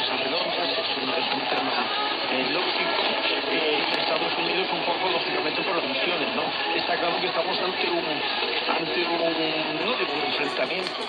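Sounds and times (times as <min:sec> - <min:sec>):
radio hiss and static: 0:00.0 - 0:11.0
faint radio voice: 0:09.7 - 0:11.0.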